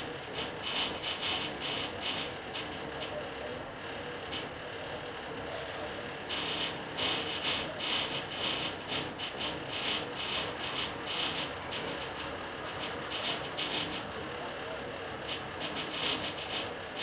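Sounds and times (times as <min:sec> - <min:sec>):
mechanical clicking and rattling: 0:06.3 - 0:14.2, 0:15.2 - 0:17.0.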